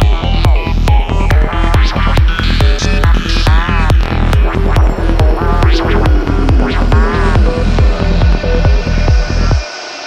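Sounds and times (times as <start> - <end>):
four-on-the-floor kick drum: 0.0 - 9.6
rolling bass line: 0.0 - 9.6
ticking percussion: 0.0 - 9.6
psytrance music: 0.0 - 10.0
synth glides bending: 3.8 - 9.6.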